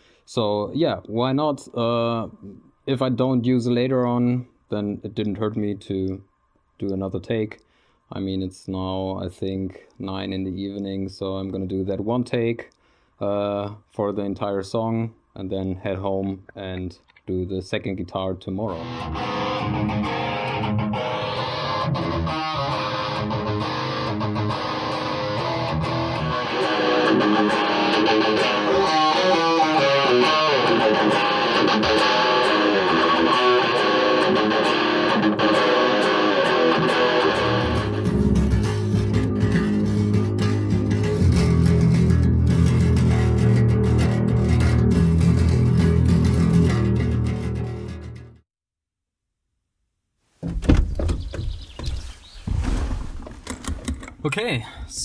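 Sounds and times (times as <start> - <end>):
black metal electric guitar: 18.7 - 48.4.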